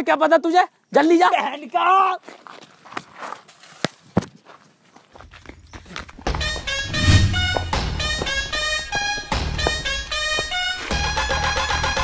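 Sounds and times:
footsteps and scuffs: 2.2s - 11.2s
background music with bass line: 6.4s - 12.0s.

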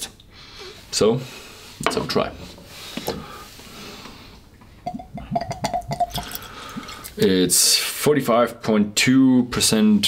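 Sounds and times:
liquid glugging into a glass: 4.8s - 7.2s.

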